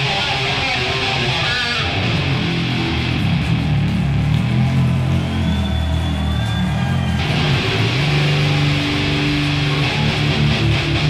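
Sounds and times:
electric guitar solo: 0:00.0 - 0:03.8, 0:07.2 - 0:11.0.

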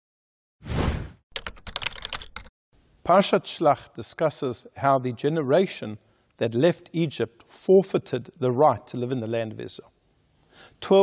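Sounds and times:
rapid typing-like clicks: 0:01.4 - 0:02.5.

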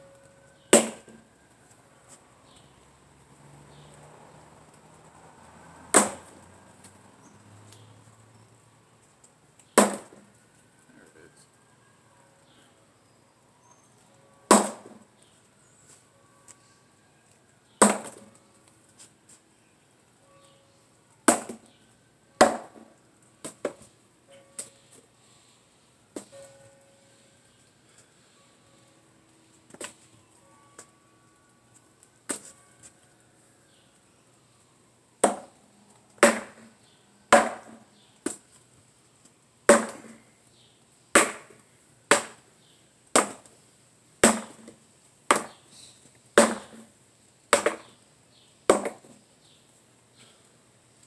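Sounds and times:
sword striking wrapped wooden post: 0:00.8 - 0:01.2, 0:06.0 - 0:06.3, 0:09.8 - 0:10.2, 0:14.5 - 0:15.0, 0:17.8 - 0:18.3, 0:22.4 - 0:23.8, 0:36.2 - 0:38.4, 0:39.7 - 0:40.2, 0:41.2 - 0:42.4, 0:43.2 - 0:43.5, 0:44.2 - 0:45.6, 0:46.4 - 0:46.9, 0:47.5 - 0:47.9.

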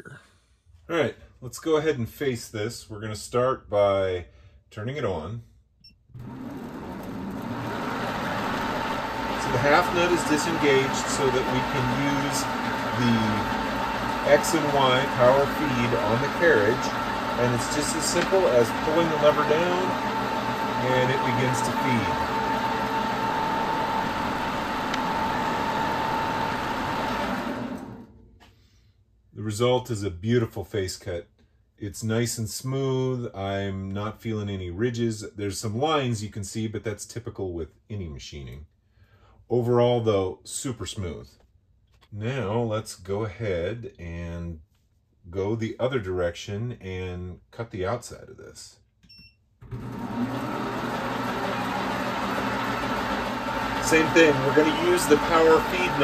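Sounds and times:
metal lathe running: 0:06.2 - 0:28.0, 0:49.8 - 0:56.0.

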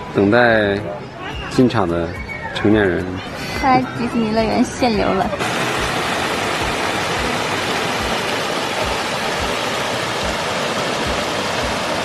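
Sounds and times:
small waterfall rushing: 0:05.0 - 0:12.0.

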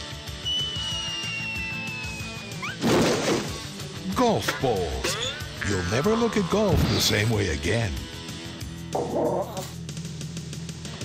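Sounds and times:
background music: 0:00.0 - 0:11.0
whistle falling in pitch: 0:00.4 - 0:02.8
comedy crash: 0:02.6 - 0:03.7.

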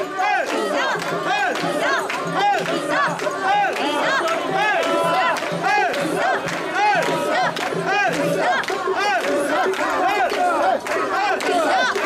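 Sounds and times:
crowd chanting in unison: 0:00.0 - 0:12.0.

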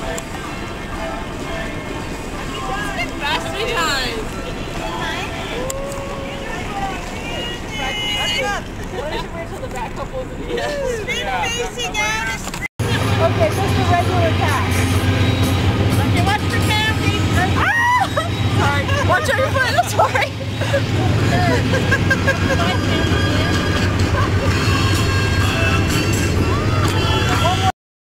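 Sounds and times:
people calling: 0:00.0 - 0:27.7
background music: 0:12.8 - 0:27.7.

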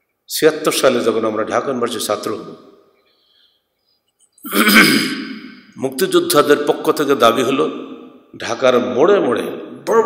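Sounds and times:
man clearing his throat: 0:04.4 - 0:05.4.

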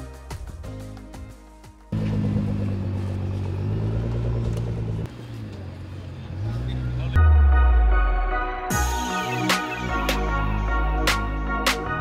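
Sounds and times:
background music: 0:00.0 - 0:02.0, 0:07.1 - 0:12.0
car engine running at low speed: 0:02.0 - 0:07.1.

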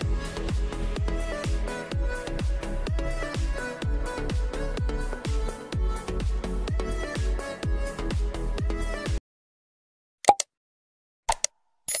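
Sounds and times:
sharp clicks: 0:11.3 - 0:12.0.

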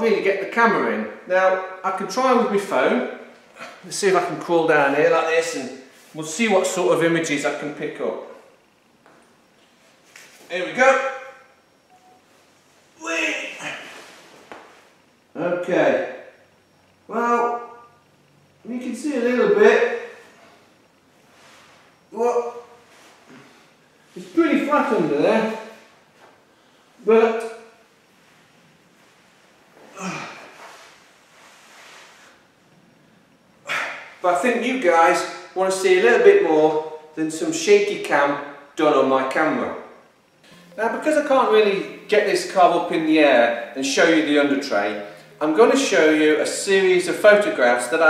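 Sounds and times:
man speaking: 0:00.0 - 0:08.4, 0:10.5 - 0:11.3, 0:13.0 - 0:14.0, 0:17.1 - 0:17.9, 0:18.6 - 0:20.3, 0:22.1 - 0:22.8, 0:24.2 - 0:25.8, 0:27.0 - 0:27.7, 0:33.7 - 0:39.9, 0:40.5 - 0:48.0
faint short tone: 0:10.9 - 0:14.2, 0:40.3 - 0:41.6.

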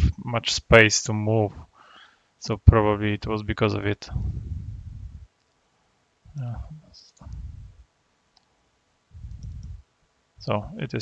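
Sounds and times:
short low muffled rumbles: 0:04.0 - 0:05.4, 0:06.3 - 0:08.0, 0:09.1 - 0:10.8.

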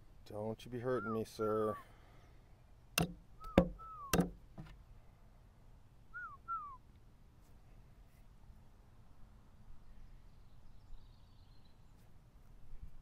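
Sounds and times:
bird whistling falling notes: 0:03.4 - 0:04.3, 0:06.2 - 0:06.8.

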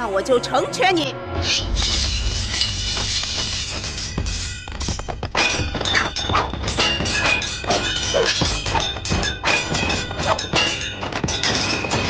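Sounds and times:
dramatic action music: 0:00.0 - 0:12.0
sharp hits: 0:01.2 - 0:12.0.

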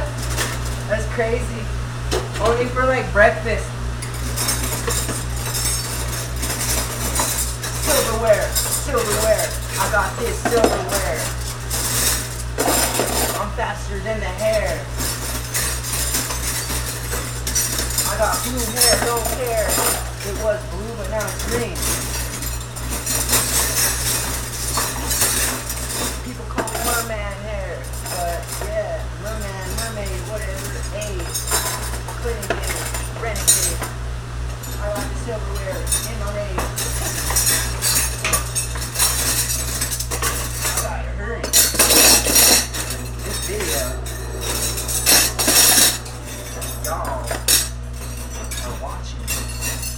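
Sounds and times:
silverware clinking and rattling: 0:00.0 - 0:01.0, 0:04.0 - 0:49.9
kitchen equipment hum: 0:00.0 - 0:49.9.

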